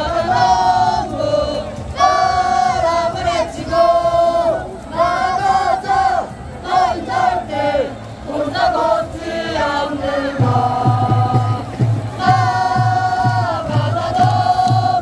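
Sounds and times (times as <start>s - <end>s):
crowd chanting and singing: 0.0s - 15.0s
deep steady drum beat: 10.2s - 15.0s.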